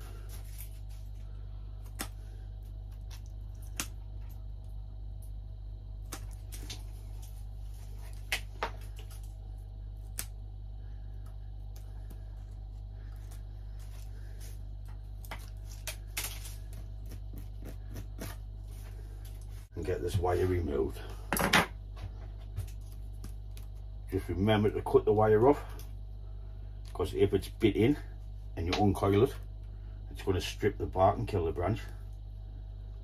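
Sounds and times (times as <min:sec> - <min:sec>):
low hum: 0:00.0 - 0:33.0.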